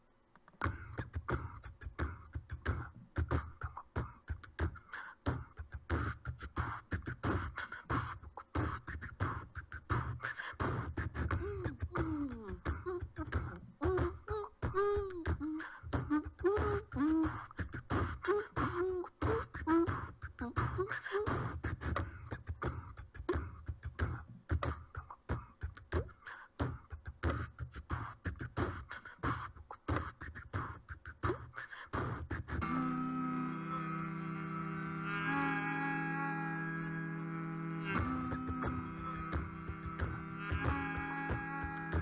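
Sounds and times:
beatboxed percussion clicks: 0.3s - 32.9s, 37.7s - 42.0s
wordless swooping vocal line: 0.6s - 42.0s
low vocal bass line: 32.4s - 42.0s.

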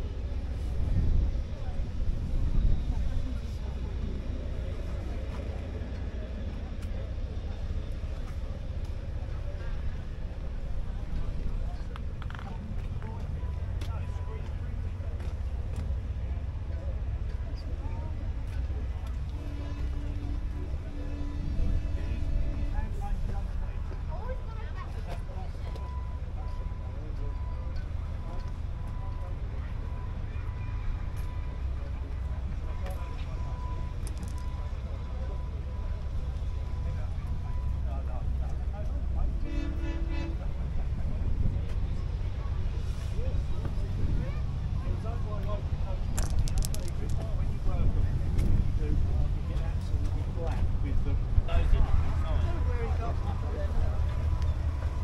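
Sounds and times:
steady low rumble: 0.0s - 55.0s
car horn: 19.4s - 23.0s, 39.4s - 40.5s.

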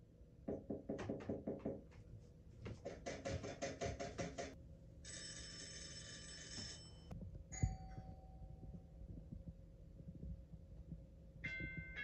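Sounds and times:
rapid knocking: 0.5s - 2.0s, 2.7s - 4.6s
telephone-like bell ringing: 5.1s - 8.2s.

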